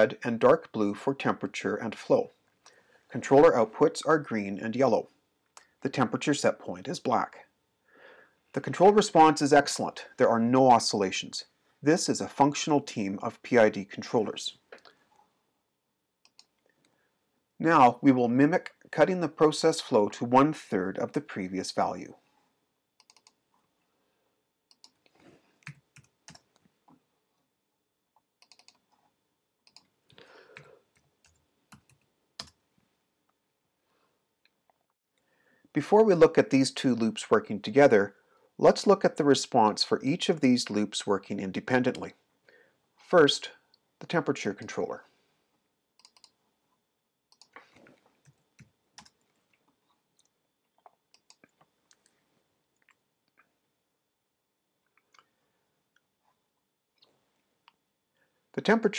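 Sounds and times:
computer mouse clicks: 0:16.2 - 0:16.8, 0:23.0 - 0:23.4, 0:24.7 - 0:26.6, 0:28.4 - 0:29.0, 0:29.6 - 0:29.9, 0:30.5 - 0:32.6, 0:46.0 - 0:46.4, 0:47.3 - 0:49.4, 0:50.2 - 0:52.2
computer mouse and keyboard clicks: 0:23.0 - 0:23.4, 0:28.4 - 0:29.0, 0:46.0 - 0:46.4.

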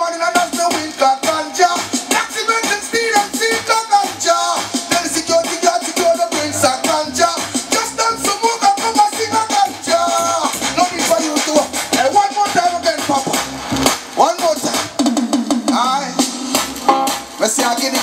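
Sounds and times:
man singing into a microphone: 0:00.0 - 0:13.3, 0:17.4 - 0:18.0
backing track: 0:00.0 - 0:18.0
bass beat: 0:00.0 - 0:18.0.

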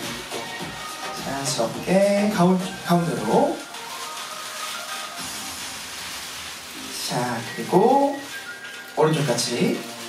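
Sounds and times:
faint background music: 0:00.0 - 0:10.0
room noise hiss: 0:00.0 - 0:10.0.

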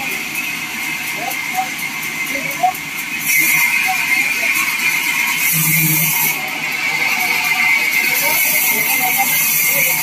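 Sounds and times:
bandsaw high whine: 0:00.0 - 0:10.0
short low hum: 0:05.4 - 0:06.6.

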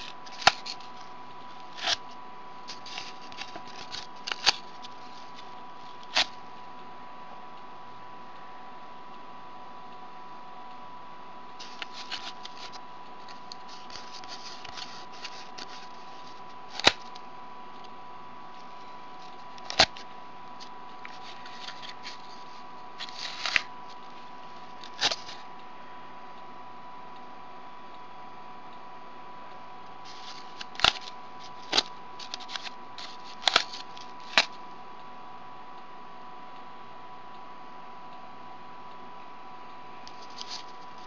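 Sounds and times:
fingers rustling on cardboard: 0:00.0 - 0:06.4, 0:11.6 - 0:17.2, 0:18.6 - 0:25.5, 0:30.1 - 0:34.6, 0:40.1 - 0:41.0
faint steady hum: 0:00.0 - 0:41.0.

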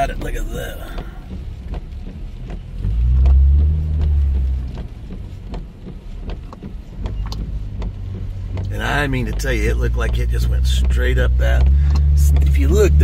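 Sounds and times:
faint light ticks: 0:00.0 - 0:13.0
road and engine noise inside car: 0:00.0 - 0:13.0.

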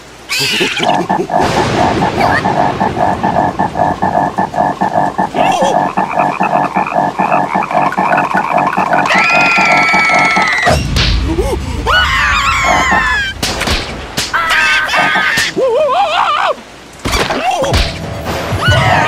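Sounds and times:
high screaming cry: 0:00.3 - 0:01.2, 0:08.9 - 0:10.8, 0:11.9 - 0:13.4, 0:14.4 - 0:16.6
cartoon frog croaking: 0:00.3 - 0:10.7, 0:12.5 - 0:13.2, 0:14.4 - 0:15.5
rising and falling squeals: 0:00.3 - 0:10.8, 0:11.9 - 0:13.4.

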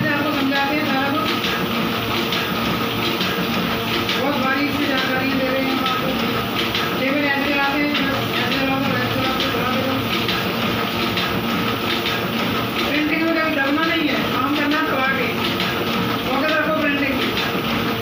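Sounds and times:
printing press clatter: 0:00.0 - 0:18.0.

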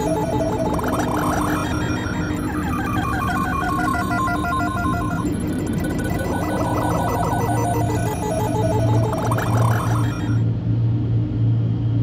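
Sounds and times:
trilling bell-like synth: 0:00.0 - 0:10.4
steady low synth tones: 0:00.0 - 0:11.1.

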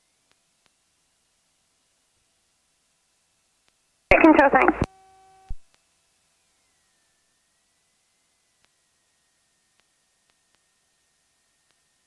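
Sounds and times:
clipped radio speech: 0:04.1 - 0:04.9
radio transmission click: 0:04.1 - 0:04.9
steady buzzing tone: 0:04.1 - 0:05.6.

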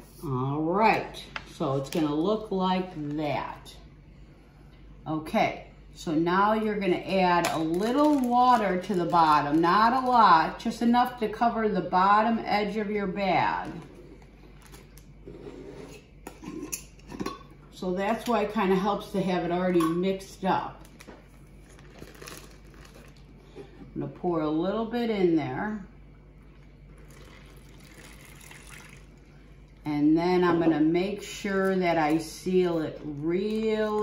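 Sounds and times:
plastic bag set on countertop: 0:07.5 - 0:10.2
water pouring into plastic bag: 0:27.0 - 0:29.1.

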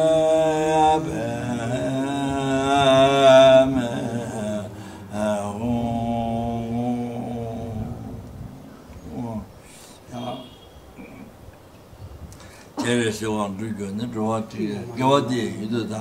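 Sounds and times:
man chanting a prayer: 0:00.0 - 0:08.3, 0:09.0 - 0:10.6, 0:12.8 - 0:16.0.

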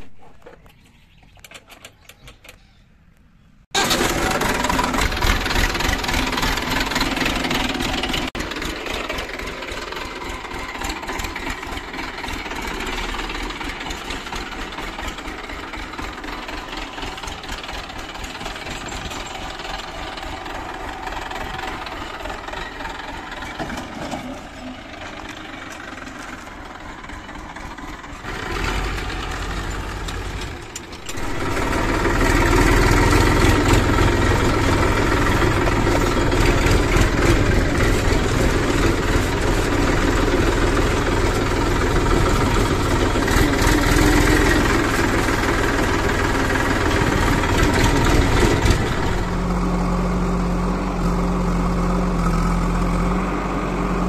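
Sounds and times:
tractor diesel engine running: 0:03.7 - 0:54.0.

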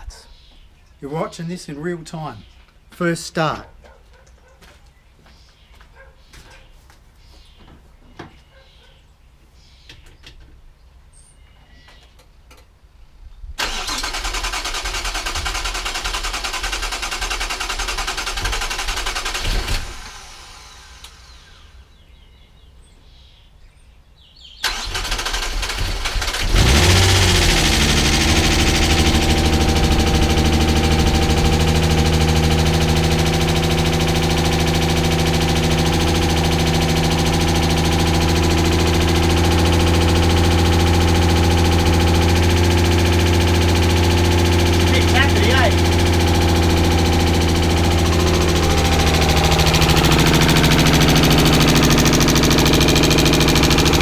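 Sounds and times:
starter motor cranking: 0:13.6 - 0:21.6, 0:24.6 - 0:54.0
car engine idling: 0:24.7 - 0:54.0.

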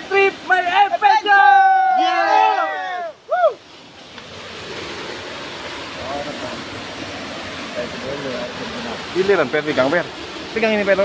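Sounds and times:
waterfall and stream rushing: 0:00.0 - 0:11.0.

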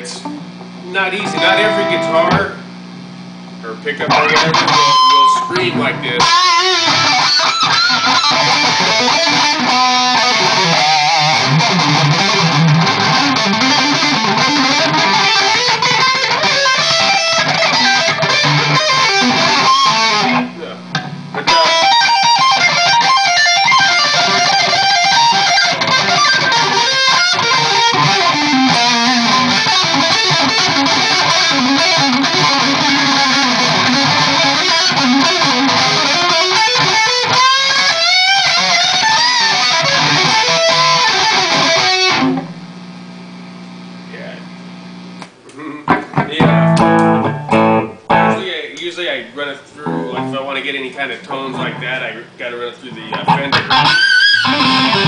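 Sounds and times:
distorted electric guitar lead: 0:00.0 - 0:48.6, 0:49.8 - 0:55.0.

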